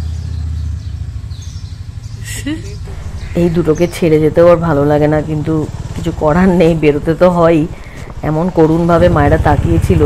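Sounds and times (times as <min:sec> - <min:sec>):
low rumble: 0:01.1 - 0:10.0.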